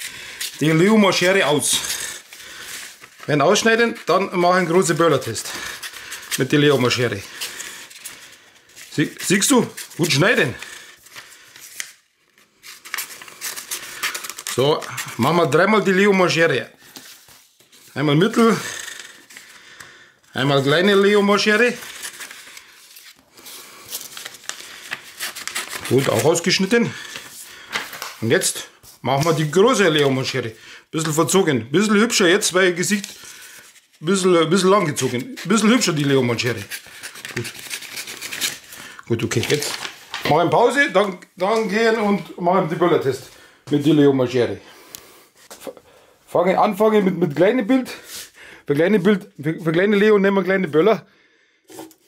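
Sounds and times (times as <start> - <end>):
paper rustling: 0.0 - 44.0
scissors snipping paper: 36.6 - 38.7.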